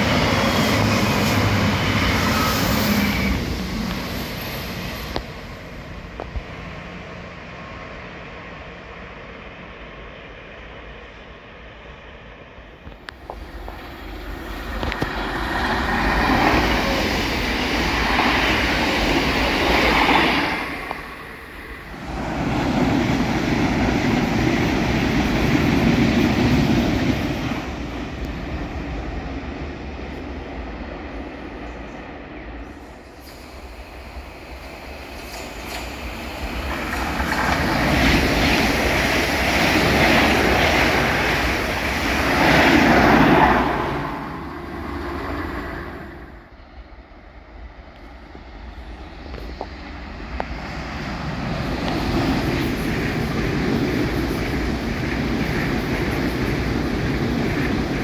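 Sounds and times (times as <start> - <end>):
wheels on rail: 0.0 - 46.8, 47.5 - 58.0
trains passing at speed: 0.0 - 58.0.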